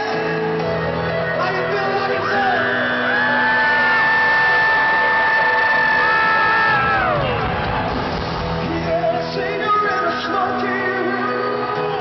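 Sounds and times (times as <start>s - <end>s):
band music: 0.0s - 12.0s
crowd cheering: 0.0s - 12.0s
fans screaming high notes: 0.0s - 12.0s.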